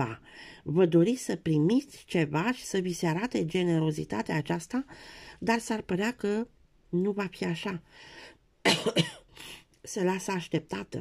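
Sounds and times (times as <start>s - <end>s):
person coughing: 8.6s - 9.4s.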